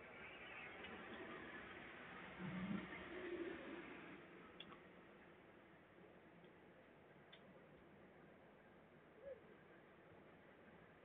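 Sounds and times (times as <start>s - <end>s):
faint room hiss: 0.0s - 11.0s
faint ticks: 6.4s - 7.9s.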